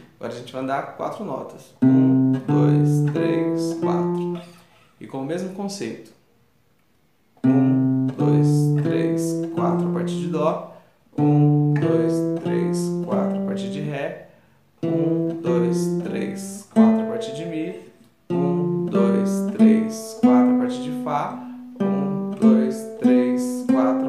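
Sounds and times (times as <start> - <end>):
classical guitar plucked notes: 1.8 - 4.6, 7.4 - 24.0.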